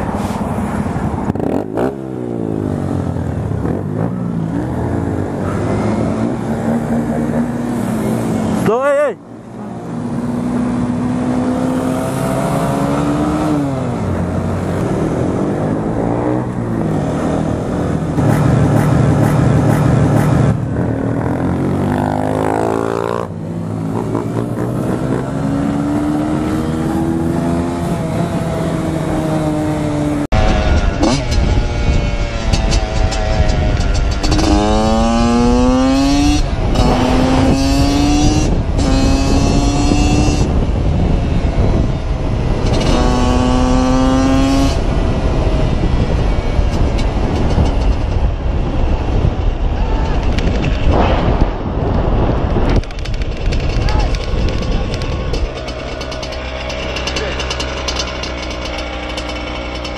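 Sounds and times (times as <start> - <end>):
dirt bike accelerating: 0.0 - 59.9
motorcycle engine revving: 0.9 - 8.7, 9.5 - 49.6, 50.2 - 59.9
wind noise on microphone: 22.6 - 56.7.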